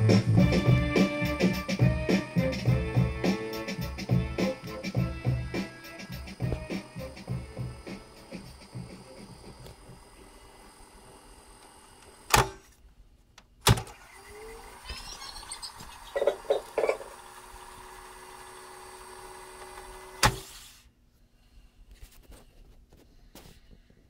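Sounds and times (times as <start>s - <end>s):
tape reels spooling with whine: 6.3s - 12.4s, 13.9s - 20.3s
tape recorder transport click: 11.6s - 12.6s, 13.6s - 14.0s, 19.6s - 20.5s.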